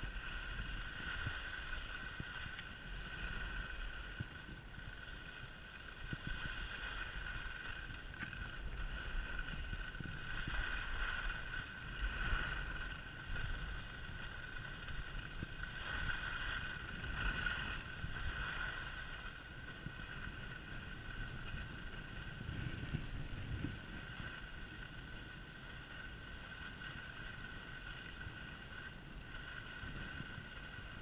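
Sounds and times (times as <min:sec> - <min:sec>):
skis sliding over snow: 0:00.0 - 0:31.0
wind rumbling on microphone: 0:00.0 - 0:31.0.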